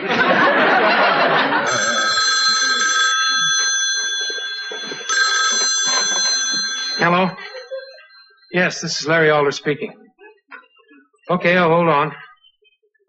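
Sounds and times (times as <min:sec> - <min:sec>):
studio audience laughter: 0:00.0 - 0:02.1
telephone bell ringing: 0:00.4 - 0:09.2.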